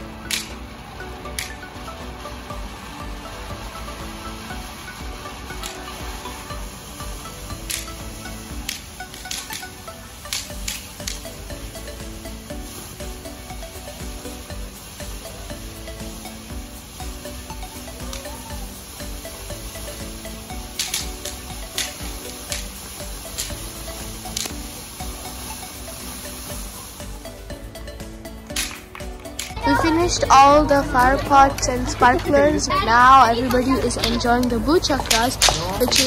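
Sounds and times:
fountain firework spraying hiss: 0:00.0 - 0:32.1
background music: 0:00.0 - 0:36.0
sharp cracks: 0:00.2 - 0:00.6, 0:08.6 - 0:11.3, 0:20.7 - 0:22.8, 0:28.5 - 0:29.6.

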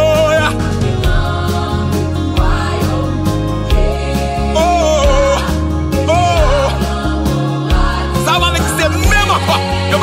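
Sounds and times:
gospel worship music: 0:00.0 - 0:10.0.

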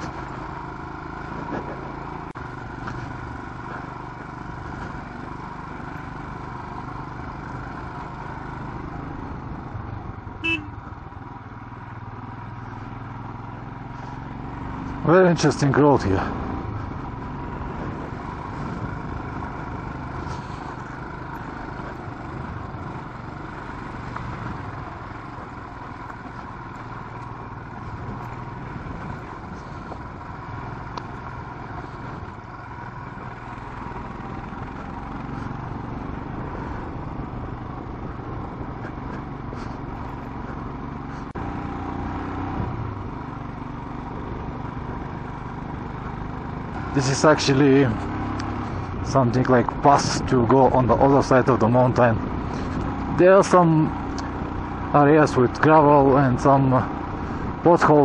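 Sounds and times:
motorcycle engine running: 0:00.0 - 0:58.0
wind and road noise: 0:00.0 - 0:58.0.

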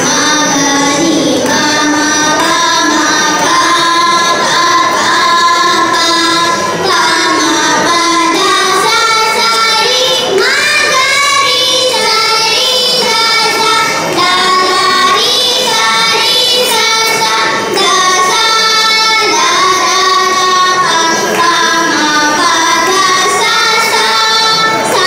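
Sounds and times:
girls singing together: 0:00.0 - 0:25.0.

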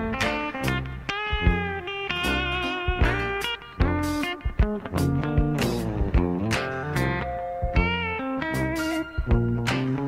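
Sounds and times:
bass and drums accompaniment: 0:00.0 - 0:10.0.

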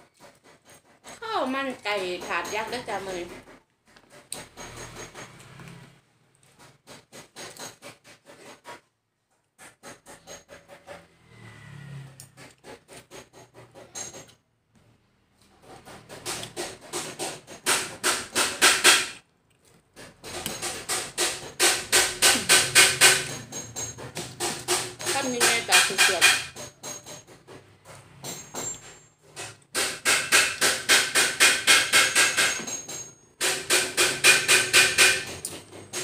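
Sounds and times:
utensils scraping plastic bowl: 0:00.0 - 0:05.8, 0:06.4 - 0:08.9, 0:15.4 - 0:19.2, 0:19.9 - 0:33.0.

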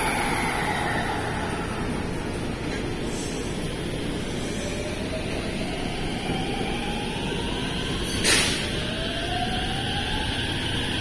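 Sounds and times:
train wheels rumbling on rail: 0:00.0 - 0:11.0.

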